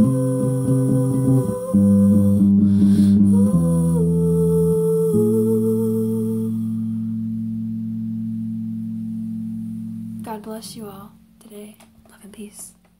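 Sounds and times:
woman singing long note: 0.0 - 7.0
electric bass guitar note: 0.0 - 11.4.

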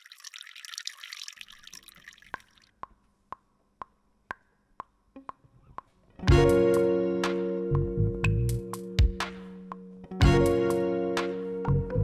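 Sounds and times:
liquid pouring into a teacup: 0.0 - 2.7.

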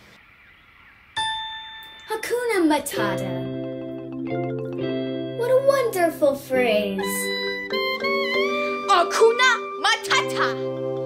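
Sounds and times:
bright bell-like ding: 1.2 - 2.2.

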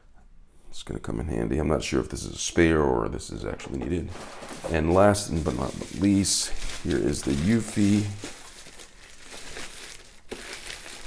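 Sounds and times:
plastic bag crinkling: 4.1 - 11.0.

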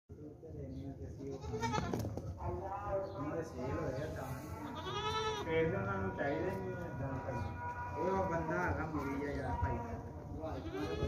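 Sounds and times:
goat kids bleating: 1.2 - 2.2, 4.5 - 5.5, 10.5 - 11.0.

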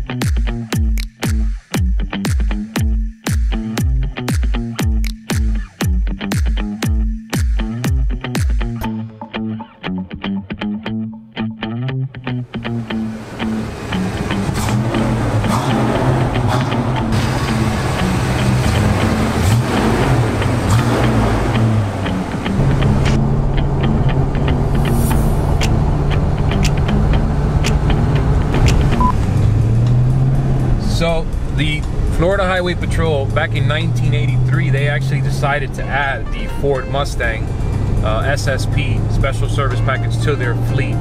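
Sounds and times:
background music: 0.0 - 41.0
car engine revving: 12.4 - 40.9.

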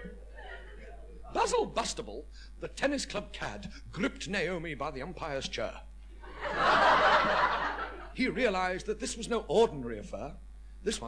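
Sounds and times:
audience laughing: 6.3 - 8.1.

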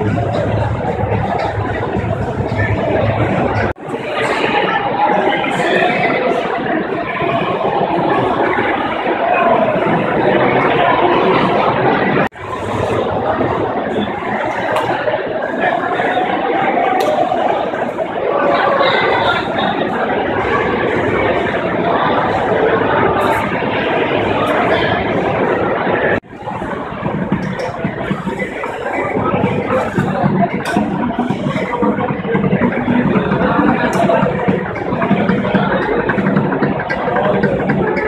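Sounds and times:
echoing crowd hubbub: 0.0 - 38.0.

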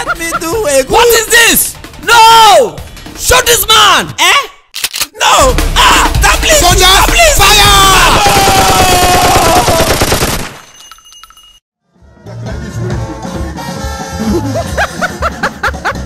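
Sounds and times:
man's long falling cry: 8.0 - 9.9
rapid machine-gun fire: 8.0 - 10.7.

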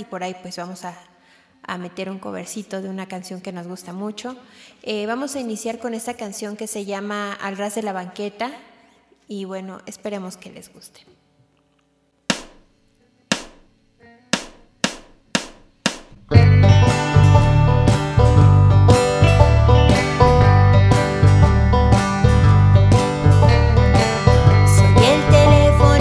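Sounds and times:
country band playing: 16.2 - 26.0.

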